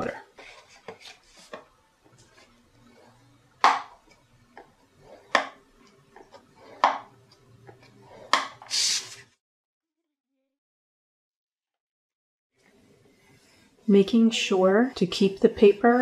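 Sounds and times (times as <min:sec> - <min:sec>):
card sliding rustle: 0:08.2 - 0:09.3.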